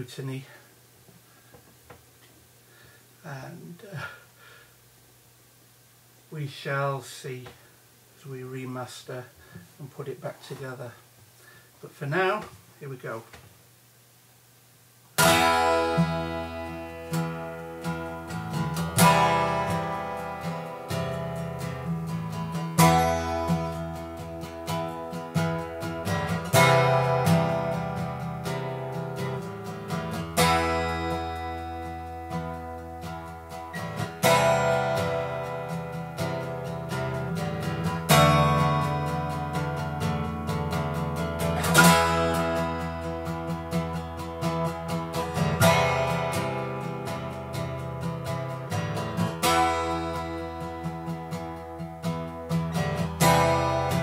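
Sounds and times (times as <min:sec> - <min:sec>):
acoustic guitar strumming: 0:15.2 - 0:54.0.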